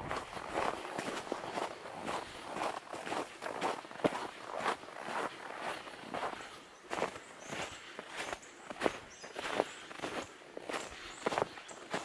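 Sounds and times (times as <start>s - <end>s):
footsteps on snow: 0.0s - 12.0s.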